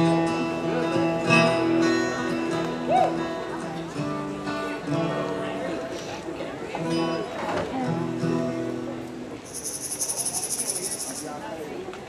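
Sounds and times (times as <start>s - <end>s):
acoustic string band notes: 0.0s - 9.6s
insect trilling: 9.5s - 11.3s.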